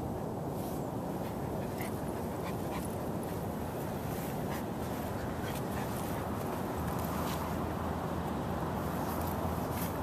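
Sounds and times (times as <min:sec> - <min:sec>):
low rumble of outdoor noise: 0:00.0 - 0:10.0
dog panting: 0:01.1 - 0:06.8.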